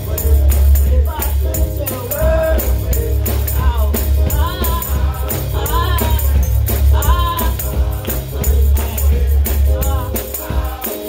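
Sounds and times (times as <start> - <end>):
heavy bass and drums: 0.0 - 10.6
choir singing gospel: 0.0 - 11.0
high percussive hits: 0.0 - 11.0.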